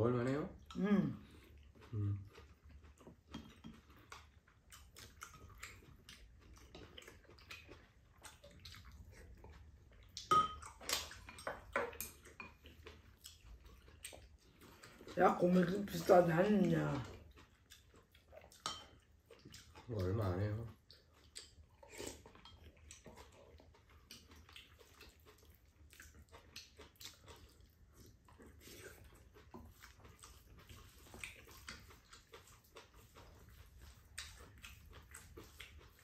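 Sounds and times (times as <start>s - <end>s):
people chewing food: 0.0s - 36.0s
slurping and eating: 0.2s - 36.0s
metal spoon clinking ceramic bowl: 10.3s - 10.6s.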